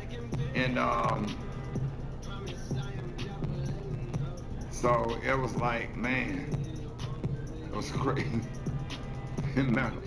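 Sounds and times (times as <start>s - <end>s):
background music with low beat: 0.0s - 10.0s
man talking: 4.8s - 6.5s, 9.4s - 10.0s.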